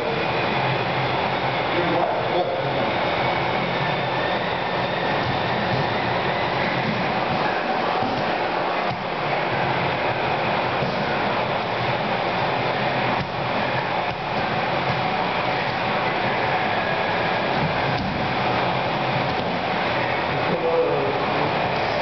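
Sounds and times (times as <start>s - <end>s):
steady rushing noise: 0.0s - 22.0s.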